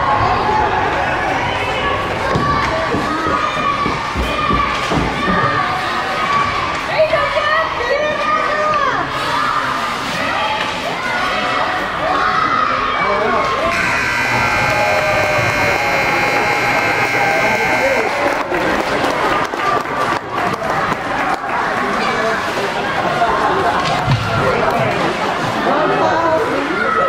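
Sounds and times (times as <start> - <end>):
crowd voices: 0.0 - 27.0
rink buzzer: 13.7 - 18.6.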